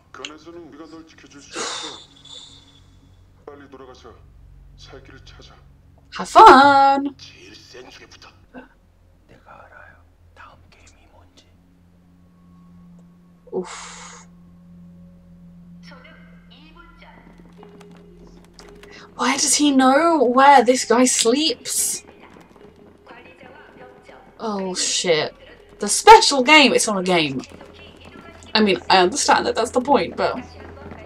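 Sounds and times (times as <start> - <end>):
quiet tv voices: 0.0 - 2.7, 6.2 - 11.6, 15.9 - 31.0.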